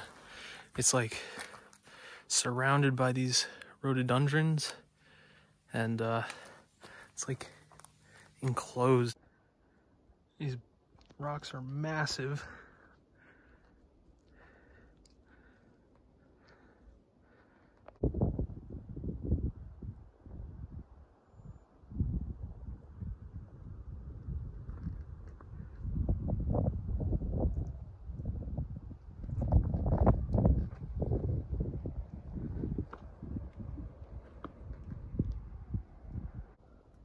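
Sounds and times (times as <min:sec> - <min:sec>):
wind and handling rumble: 0:13.2 - 0:37.0.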